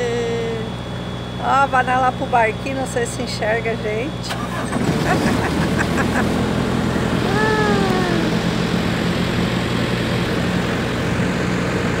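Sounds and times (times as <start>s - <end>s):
ferry engine droning: 0.0s - 12.0s
person calling out: 7.2s - 8.6s.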